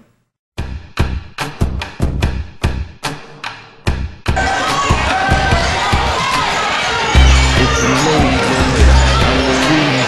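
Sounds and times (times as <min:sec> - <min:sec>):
crowd noise and shouting: 0:04.4 - 0:10.0.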